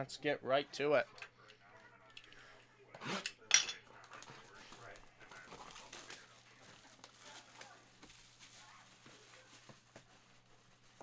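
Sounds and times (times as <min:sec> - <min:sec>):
plastic shrink wrap tearing: 0:05.3 - 0:09.9.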